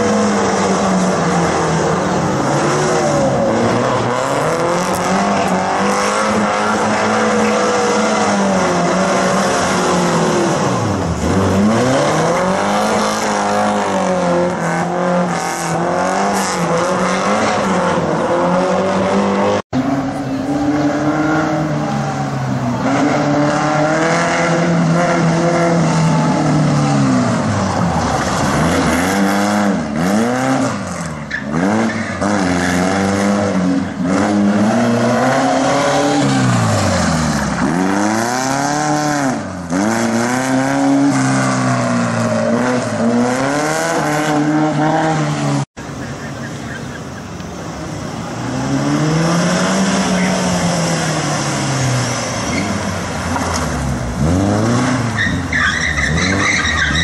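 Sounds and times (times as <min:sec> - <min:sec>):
car engine revving: 0:00.0 - 0:57.0.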